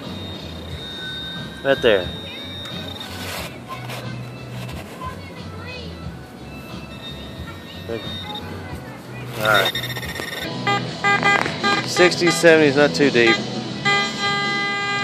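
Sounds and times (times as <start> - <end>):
high steady alert tone: 0.0 - 3.5, 5.9 - 12.6.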